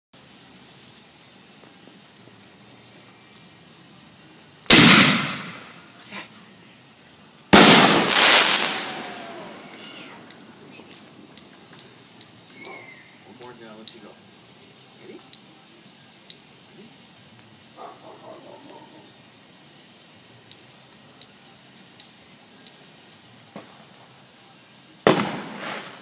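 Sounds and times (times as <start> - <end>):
firework shell bursting: 4.6 - 5.9, 7.5 - 14.0, 25.0 - 26.0
firework mortar launch bang: 4.7 - 5.8, 7.5 - 10.2, 25.0 - 26.0.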